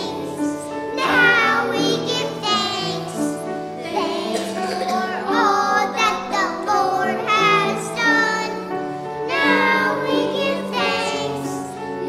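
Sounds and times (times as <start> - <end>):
children singing: 0.0 - 12.0.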